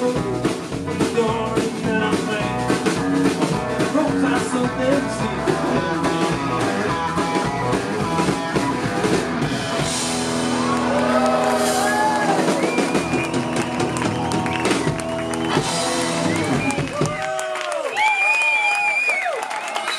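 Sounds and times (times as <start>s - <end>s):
electric bass: 0.0s - 17.2s
drums: 0.0s - 19.9s
crowd cheering and whooping: 6.3s - 19.9s.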